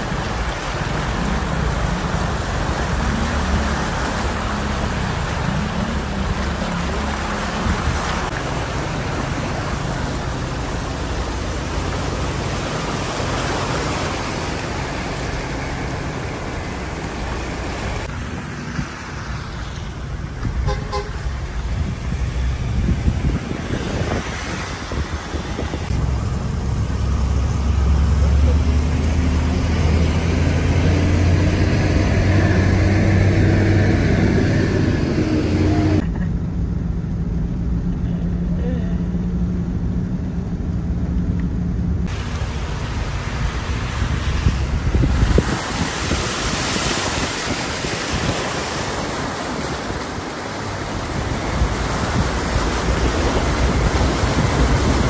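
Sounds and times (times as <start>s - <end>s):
water spraying against car: 0.0s - 36.3s, 41.8s - 55.0s
car engine drone: 0.0s - 55.0s
car horn toots: 20.6s - 21.2s.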